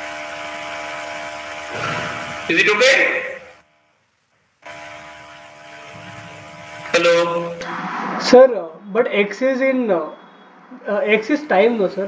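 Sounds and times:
electrical buzz: 0:00.6 - 0:03.6, 0:04.6 - 0:12.0.

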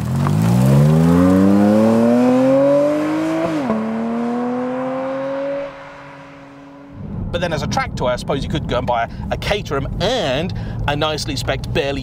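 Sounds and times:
sports car accelerating past: 0:00.0 - 0:07.4.

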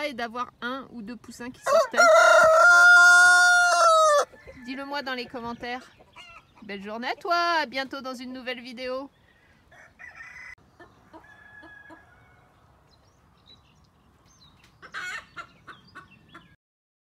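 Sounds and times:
chickens clucking: 0:02.0 - 0:07.5, 0:09.6 - 0:12.3, 0:14.6 - 0:16.6.

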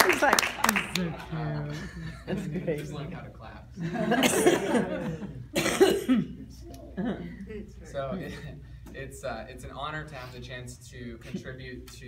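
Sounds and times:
person coughing: 0:04.2 - 0:04.8, 0:05.5 - 0:06.5.

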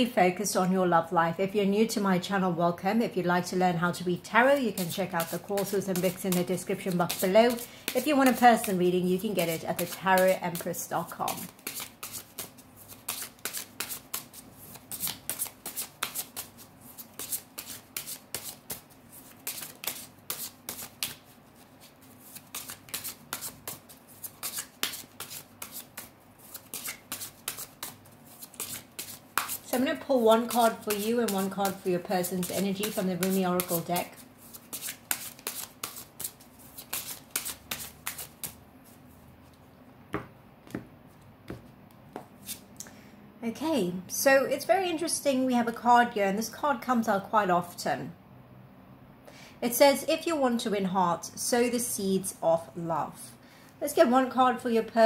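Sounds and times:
cards being shuffled: 0:04.6 - 0:39.0, 0:41.6 - 0:42.6.

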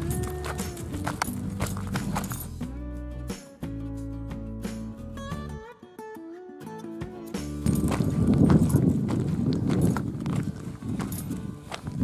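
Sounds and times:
footsteps on gravel: 0:00.0 - 0:02.6, 0:07.6 - 0:12.0
background music: 0:00.0 - 0:12.0
wind buffeting microphone: 0:07.7 - 0:12.0.

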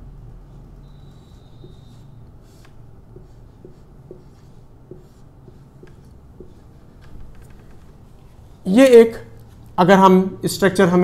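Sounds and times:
marker pen on whiteboard: 0:00.2 - 0:11.0.

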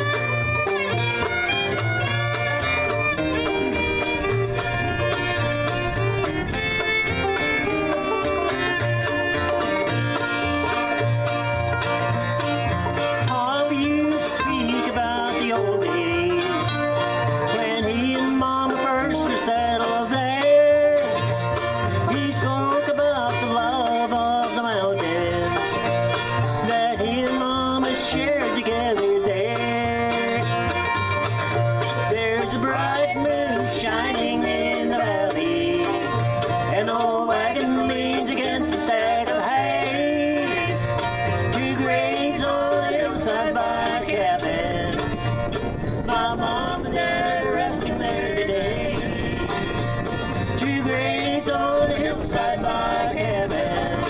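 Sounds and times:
acoustic guitar: 0:00.0 - 0:54.0
banjo: 0:00.0 - 0:54.0
fiddle: 0:00.0 - 0:54.0
mandolin: 0:00.0 - 0:54.0
upright bass: 0:00.0 - 0:54.0.

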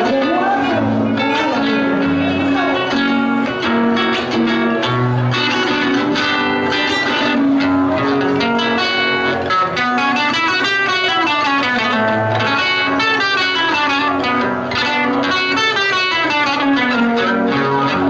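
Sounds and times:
acoustic guitar plucked runs: 0:00.0 - 0:18.0.

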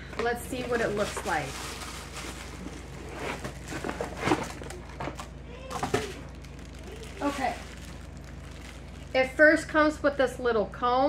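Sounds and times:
cardboard and plastic rustling: 0:00.0 - 0:09.3
low steady hum: 0:00.0 - 0:11.0.

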